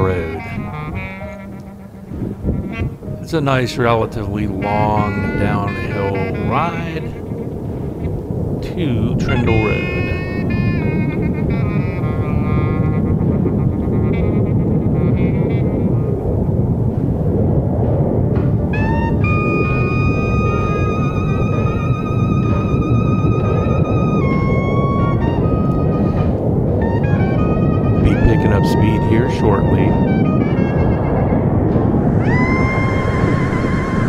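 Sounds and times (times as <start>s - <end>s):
high-pitched squealing tones: 0.0s - 7.6s, 18.8s - 34.0s
wind rushing over microphone: 0.0s - 34.0s.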